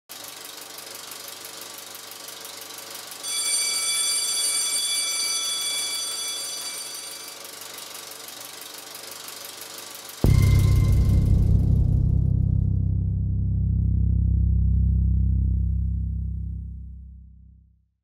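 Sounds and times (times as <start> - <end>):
film projector clicking: 0.1 - 3.2, 6.5 - 10.2
bright ringing chime: 3.2 - 7.8, 10.2 - 11.3.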